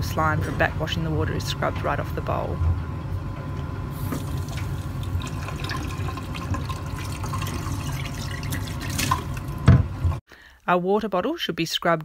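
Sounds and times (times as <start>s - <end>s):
water running and splashing: 4.1s - 9.6s.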